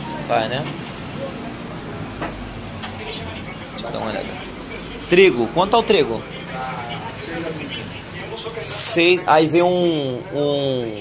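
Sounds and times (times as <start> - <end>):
city noise: 0.0 - 11.0.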